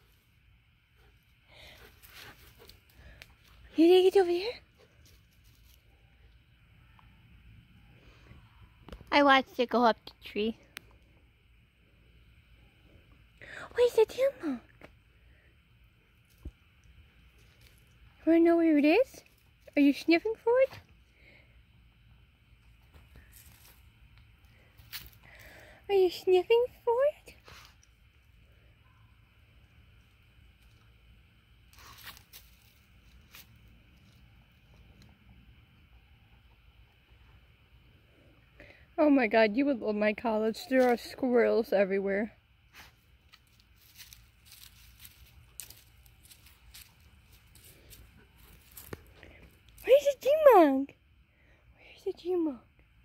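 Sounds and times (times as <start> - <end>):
faint steady high hum: 0.0 - 53.0
dog rustling in leaves and logs: 42.8 - 48.9.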